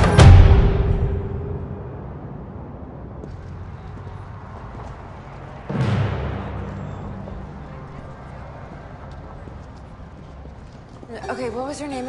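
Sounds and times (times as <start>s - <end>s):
steady low rumble: 0.0s - 10.9s
footsteps on pavement: 3.2s - 12.0s.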